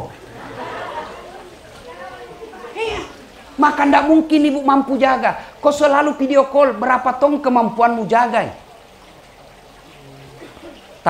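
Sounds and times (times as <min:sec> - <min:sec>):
audience murmuring and laughing: 0:00.1 - 0:03.6.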